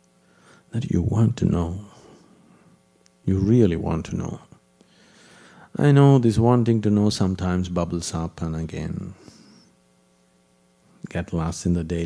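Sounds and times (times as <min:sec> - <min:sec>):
faint mains hum: 0:00.0 - 0:12.0.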